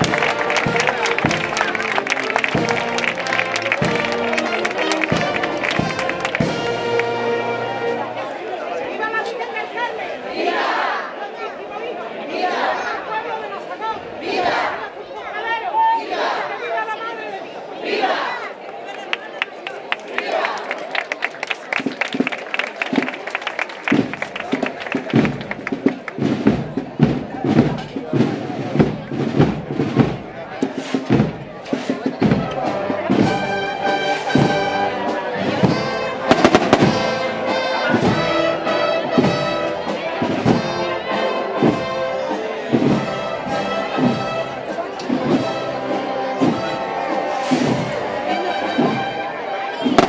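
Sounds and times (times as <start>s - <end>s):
brass band playing a march: 0.0s - 8.4s, 23.9s - 50.0s
crowd voices: 0.0s - 50.0s
sharp cracks and bangs: 36.3s - 37.0s.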